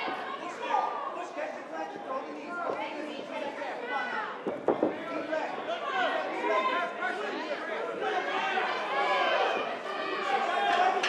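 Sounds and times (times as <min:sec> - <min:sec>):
crowd chattering and calling out: 0:00.0 - 0:11.0.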